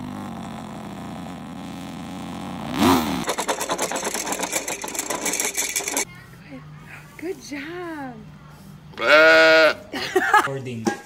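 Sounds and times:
engine-like revving hum: 0.0s - 5.2s
fast rattling whir: 0.0s - 6.1s.

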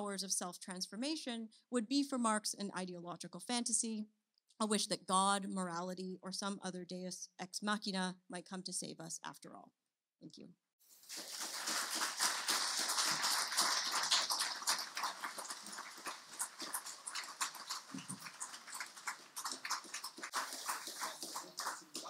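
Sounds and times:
audience applauding: 11.0s - 22.0s.

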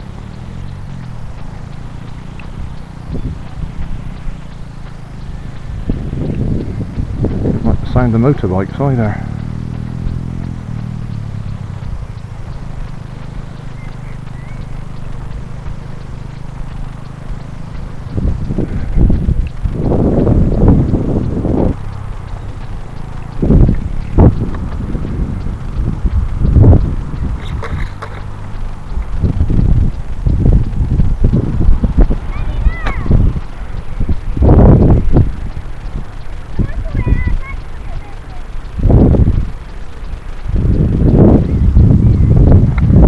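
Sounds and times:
low engine drone: 0.0s - 43.0s
wind buffeting microphone: 0.0s - 43.0s.

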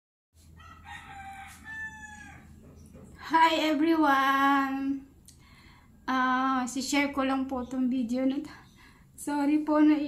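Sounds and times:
rooster crowing: 0.5s - 2.6s.

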